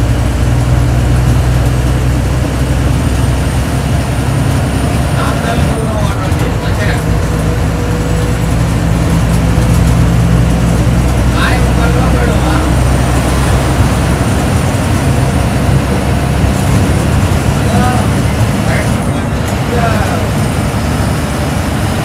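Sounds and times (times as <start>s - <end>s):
bus engine drone: 0.0s - 22.0s
road noise: 0.0s - 22.0s.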